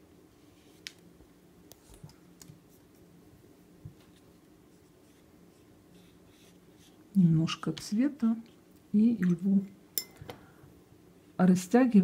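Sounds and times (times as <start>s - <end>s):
paintbrush scratching on paper: 4.1s - 7.0s.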